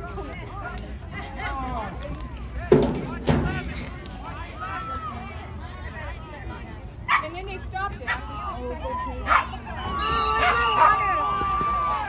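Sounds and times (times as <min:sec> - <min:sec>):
people shouting: 0:09.2 - 0:12.0.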